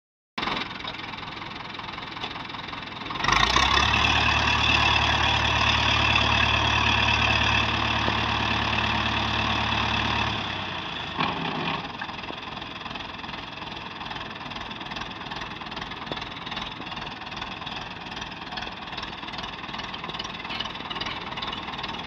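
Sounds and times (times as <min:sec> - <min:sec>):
tractor diesel engine running: 0:00.4 - 0:22.0.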